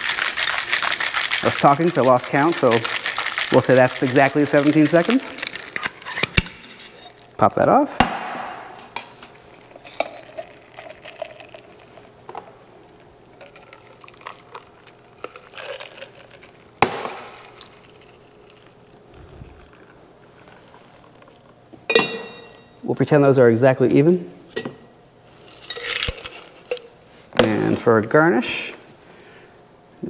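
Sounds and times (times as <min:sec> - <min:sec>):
cocktail shaker clinking: 0:00.0 - 0:05.8
drink pouring into glasses: 0:00.0 - 0:06.0, 0:09.6 - 0:12.1, 0:13.4 - 0:22.6
glass ringing clink: 0:21.9 - 0:22.8.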